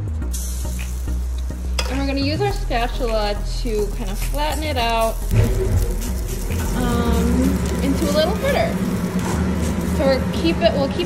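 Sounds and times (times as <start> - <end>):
batter sizzling in hot oil: 0.2 - 11.0.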